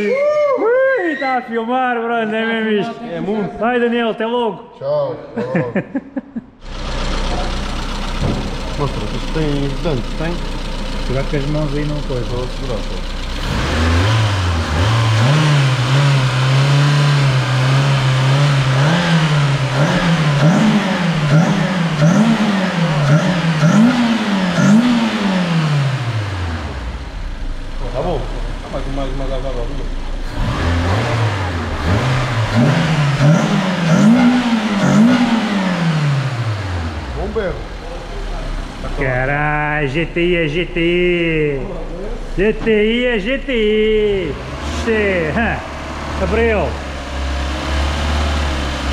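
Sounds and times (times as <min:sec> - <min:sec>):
car engine starting and revving: 0:06.6 - 0:48.9.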